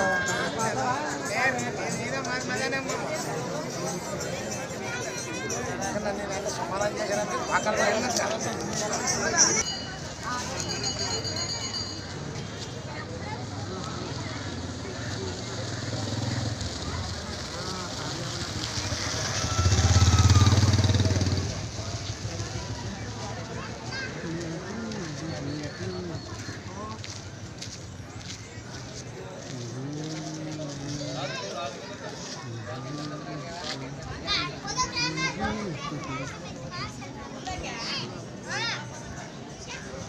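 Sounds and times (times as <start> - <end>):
children calling and shouting: 0.0 - 40.0
motorcycle engine passing by: 13.1 - 23.5.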